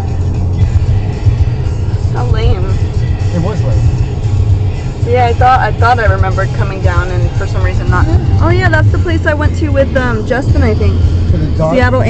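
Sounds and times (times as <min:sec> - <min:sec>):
music playing: 0:00.0 - 0:12.0
road rumble inside car: 0:00.0 - 0:12.0.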